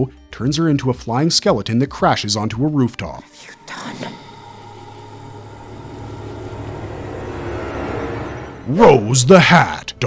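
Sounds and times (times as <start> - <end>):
low rumbling drone: 3.3 - 10.0
faint steady higher tones: 3.4 - 9.1.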